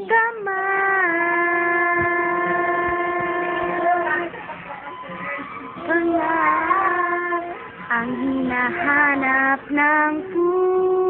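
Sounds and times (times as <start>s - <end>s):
person singing a long note: 0.0s - 4.3s, 5.8s - 11.0s.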